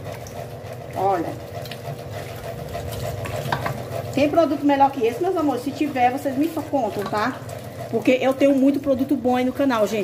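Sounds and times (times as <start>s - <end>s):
pot being scrubbed: 0.0s - 10.0s
tap water splashing on a pot: 0.0s - 10.0s.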